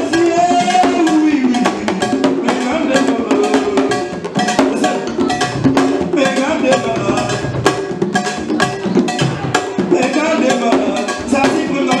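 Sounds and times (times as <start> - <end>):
hand drums beating fast rhythm: 0.0 - 12.0
voices singing: 0.0 - 12.0.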